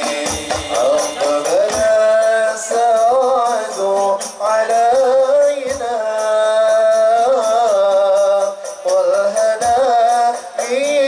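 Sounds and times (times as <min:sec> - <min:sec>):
frame drum and jingle percussion: 0:00.0 - 0:11.0
man singing ornamented phrases: 0:00.0 - 0:11.0.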